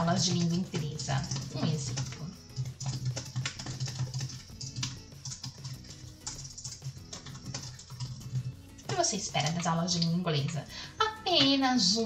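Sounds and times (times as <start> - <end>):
typing on computer keyboard: 0.0 - 10.6
background music: 0.0 - 12.0.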